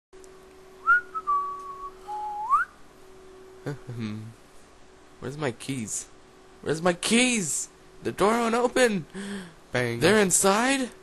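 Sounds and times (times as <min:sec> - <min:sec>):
faint steady hum: 0:00.2 - 0:11.0
person whistling a tune: 0:00.8 - 0:02.7.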